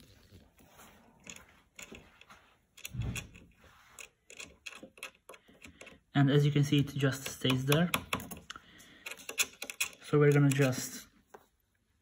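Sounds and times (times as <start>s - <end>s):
small screw clicking into metal: 4.0s - 6.0s, 7.2s - 10.9s.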